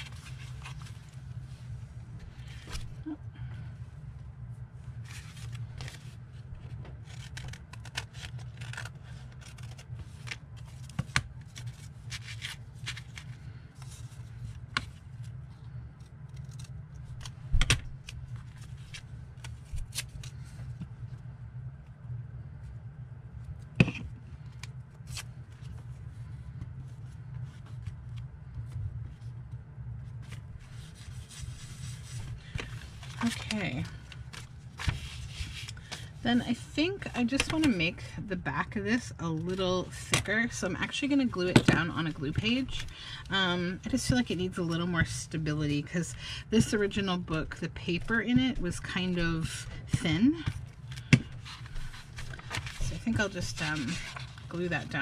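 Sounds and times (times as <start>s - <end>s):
steady low hum: 0.0s - 55.0s
paper rustling and sliding: 5.0s - 15.3s, 30.1s - 36.1s, 50.9s - 54.6s.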